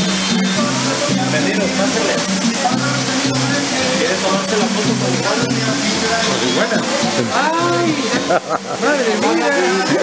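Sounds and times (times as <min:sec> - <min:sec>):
waterfall rushing: 0:00.0 - 0:10.0
voices talking and exclaiming: 0:00.3 - 0:10.0.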